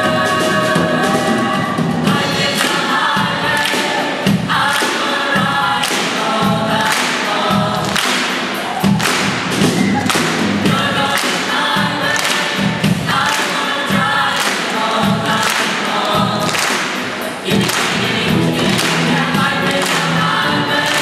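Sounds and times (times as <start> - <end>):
band with drum kit: 0.0 - 21.0
choir singing upbeat song: 0.0 - 21.0
singers clapping in time: 2.1 - 21.0.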